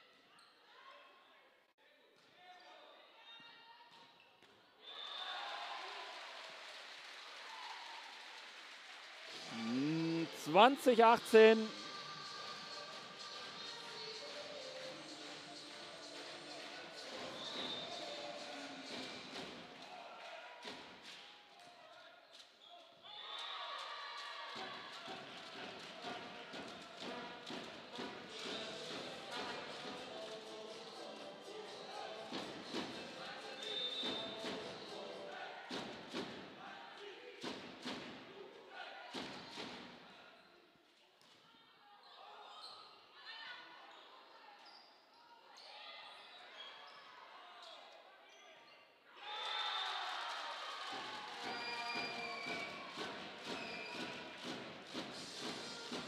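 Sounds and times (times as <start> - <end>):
voices in hall: 1.0 - 56.0.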